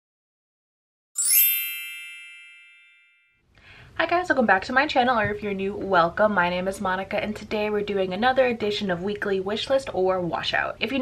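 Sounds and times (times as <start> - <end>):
bright chime: 1.2 - 3.4.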